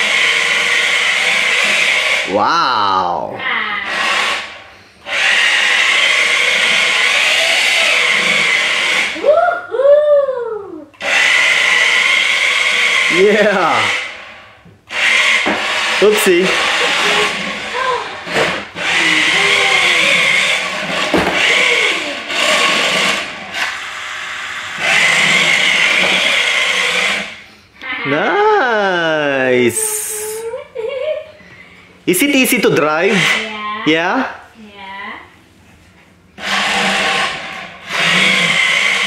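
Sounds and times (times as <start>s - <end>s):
toy car motor whirring: 0.0s - 2.4s, 3.0s - 9.2s, 11.0s - 27.5s, 32.2s - 33.8s, 36.4s - 39.0s
person speaking: 2.3s - 3.4s, 28.0s - 30.6s
baby cooing: 2.3s - 3.7s, 18.9s - 20.4s.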